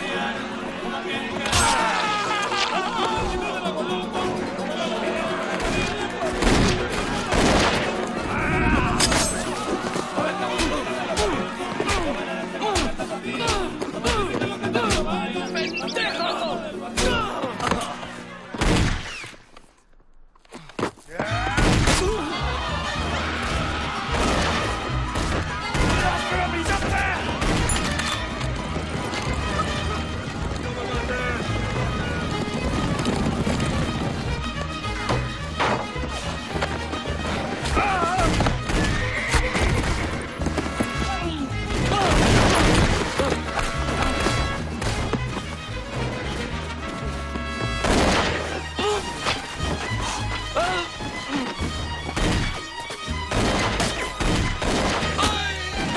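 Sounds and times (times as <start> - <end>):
crowd shouting: 0.0 - 18.4, 21.2 - 32.3
dramatic music score: 0.0 - 19.5, 21.3 - 55.9
horse neighing: 38.8 - 40.5.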